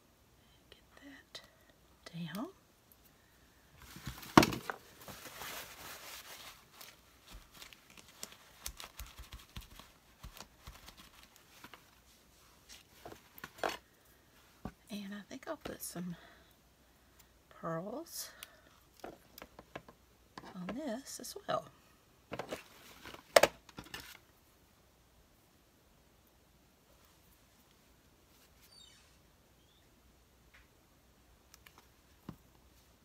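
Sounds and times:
paper crinkling and rustling: 3.8s - 13.9s.

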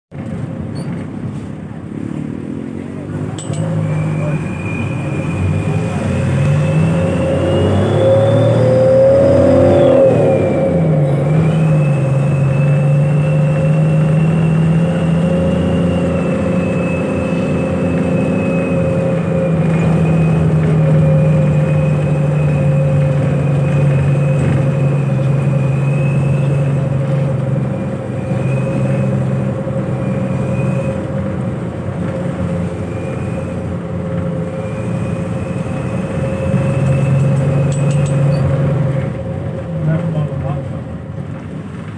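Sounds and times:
bus engine: 0.0s - 41.9s.

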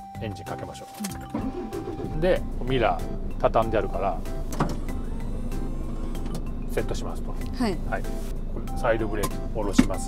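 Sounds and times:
diesel engine idling: 1.5s - 8.6s
mirror motor whine: 4.6s - 6.7s.

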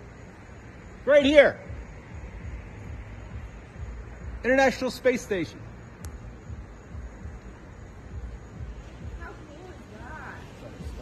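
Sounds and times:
faint hiss: 0.0s - 11.0s
sharp click: 6.0s - 6.2s.

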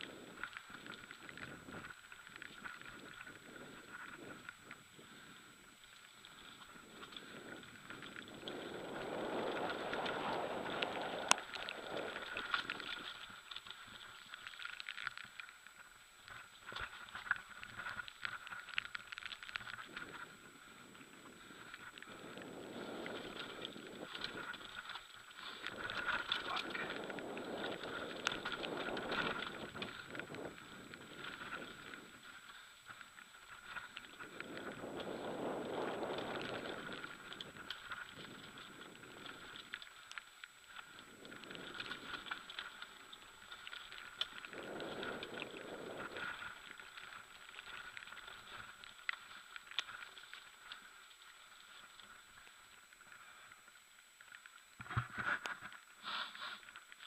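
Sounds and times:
wind on microphone: 0.0s - 14.1s, 19.6s - 39.9s, 40.8s - 47.8s
bicycle tyres rolling on dirt: 0.0s - 57.0s
bike rattling and clicking: 5.6s - 52.6s.

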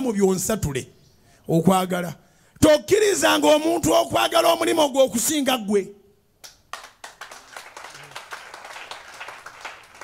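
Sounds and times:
congregation clapping: 6.4s - 10.0s.

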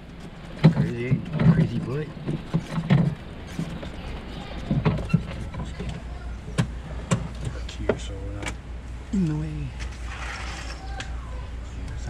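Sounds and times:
cart body knocking and rattling: 0.0s - 8.6s
cart motor humming: 0.0s - 8.6s.

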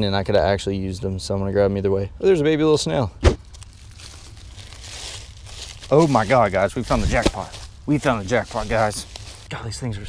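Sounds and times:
sharp knock: 3.2s - 3.4s
hand digging through soil and leaves: 3.4s - 10.0s.

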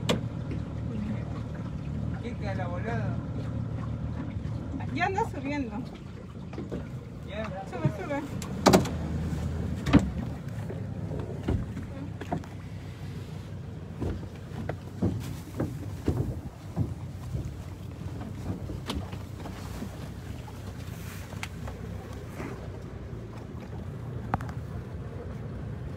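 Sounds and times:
boat engine humming: 0.0s - 25.9s
knocks against boat: 5.9s - 12.7s, 13.9s - 20.2s.

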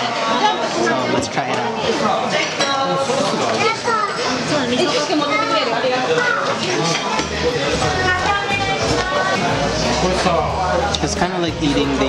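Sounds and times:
background music with bass: 7.4s - 12.0s.

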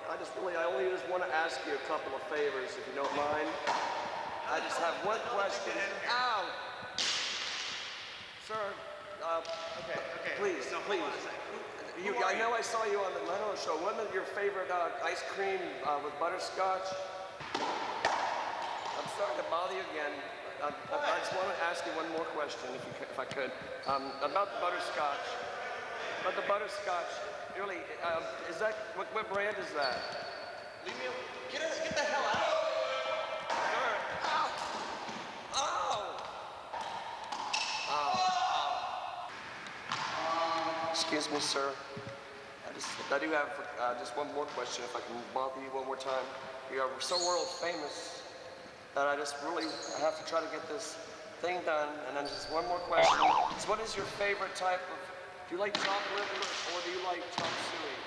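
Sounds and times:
racquetball hit with racquet: 3.0s - 4.5s, 6.8s - 8.4s, 17.4s - 19.2s, 39.7s - 40.2s.

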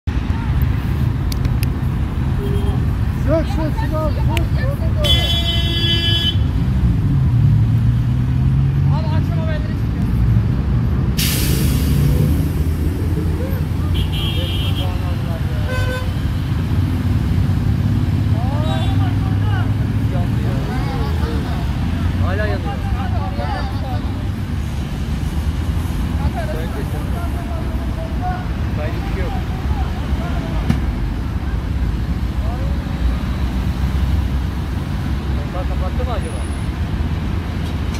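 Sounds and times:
road traffic rumble: 0.0s - 37.9s.

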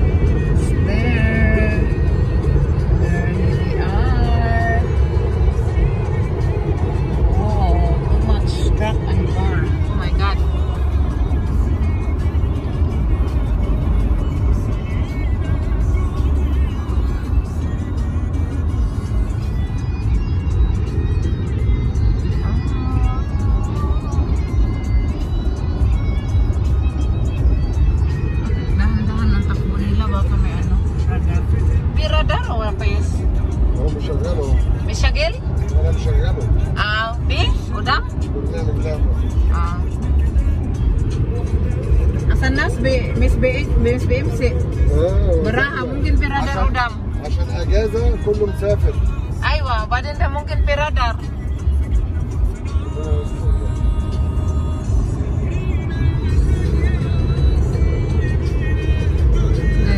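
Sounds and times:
car road and engine rumble: 0.0s - 59.9s
music with vocals: 0.0s - 59.9s.

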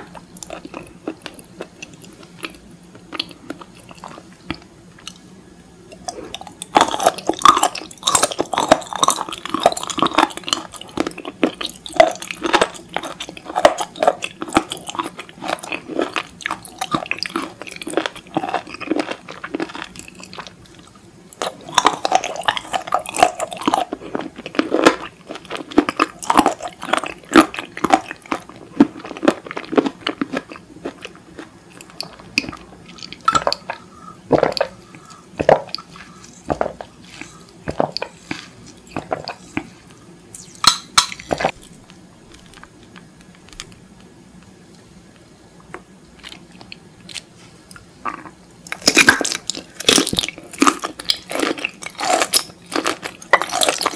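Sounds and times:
crunchy chewing: 0.0s - 5.2s, 5.9s - 43.8s, 45.6s - 53.9s.

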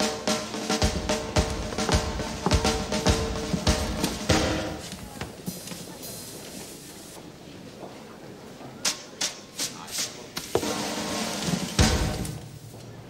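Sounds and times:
drum kit beat: 0.0s - 4.9s, 8.9s - 12.5s.

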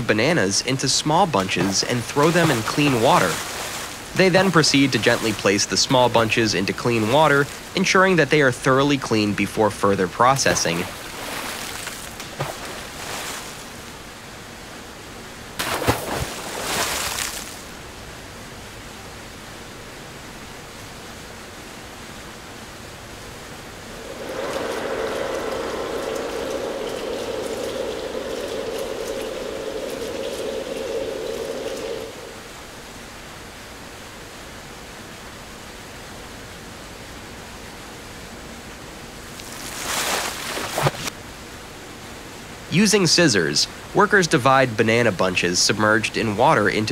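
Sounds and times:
running water in tank: 0.0s - 13.9s, 23.8s - 32.8s
water splashes: 0.0s - 14.1s, 15.6s - 17.8s, 23.8s - 32.8s, 39.2s - 41.2s
steady hum: 0.0s - 34.4s.

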